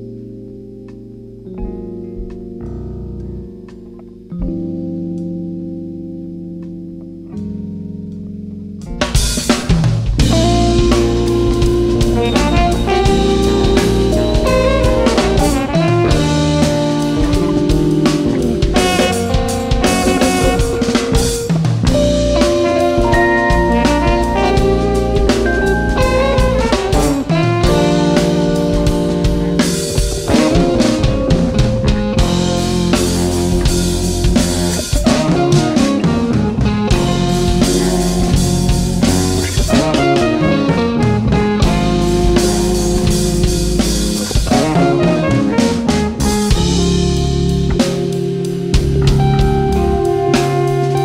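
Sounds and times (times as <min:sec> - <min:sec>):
electric bass: 0:00.0 - 0:51.0
electric guitar: 0:00.0 - 0:51.0
drum kit: 0:08.8 - 0:51.0
trumpet: 0:10.3 - 0:47.6, 0:49.2 - 0:51.0.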